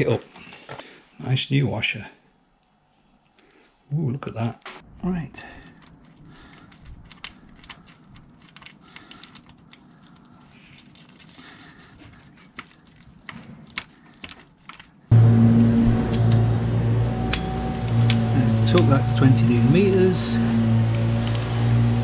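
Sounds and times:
loud droning hum: 0:15.1 - 0:22.0.

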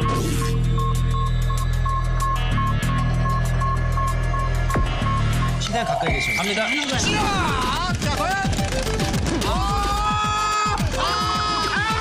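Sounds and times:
tense electronic music: 0:00.0 - 0:12.0
short repeating beeps: 0:00.3 - 0:07.8.

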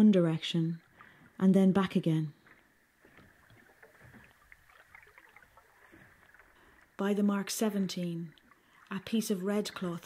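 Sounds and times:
small water splashes: 0:00.8 - 0:01.4, 0:02.3 - 0:10.0.

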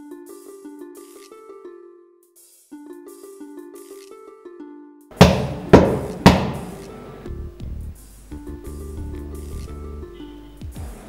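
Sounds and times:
soft background music: 0:00.0 - 0:11.0
knocks on a wooden door: 0:05.2 - 0:07.1.

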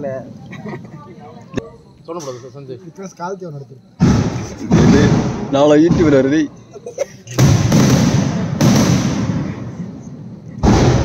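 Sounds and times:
fireworks bursting: 0:04.0 - 0:06.6, 0:07.3 - 0:11.0.

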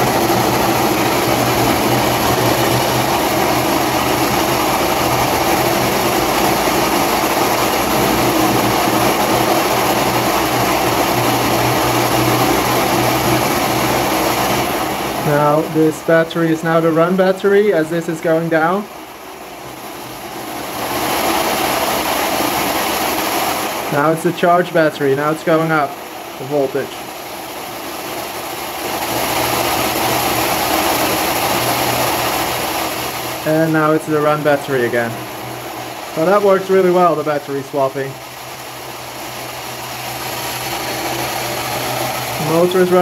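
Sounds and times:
motor rotor whirring: 0:00.0 - 0:43.0.

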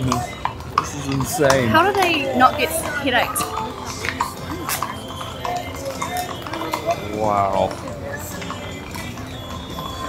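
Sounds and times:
crowd chatter: 0:00.0 - 0:10.0
hooves clopping on brick street: 0:00.0 - 0:10.0.

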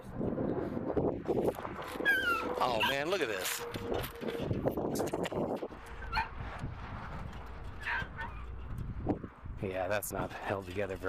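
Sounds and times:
small dogs yipping and whimpering: 0:02.0 - 0:03.1.

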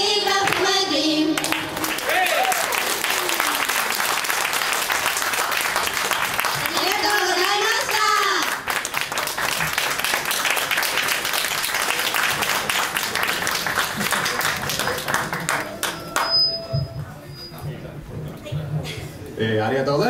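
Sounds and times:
audience applauding: 0:01.4 - 0:16.6.

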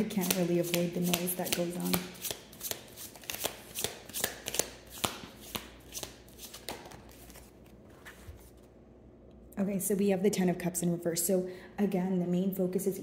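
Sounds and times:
cards being shuffled: 0:00.0 - 0:08.7.

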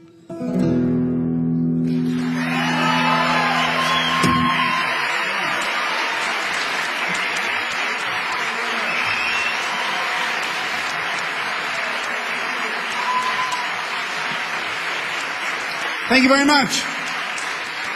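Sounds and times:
audience applauding: 0:01.9 - 0:17.9.

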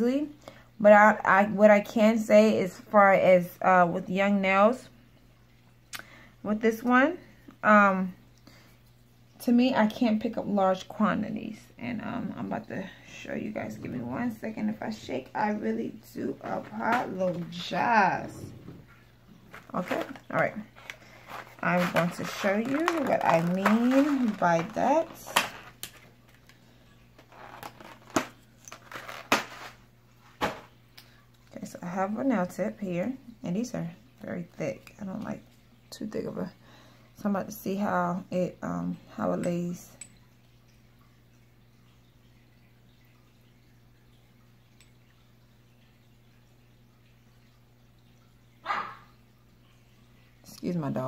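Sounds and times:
low electrical hum: 0:00.0 - 0:51.0
dog barking: 0:48.6 - 0:49.1.

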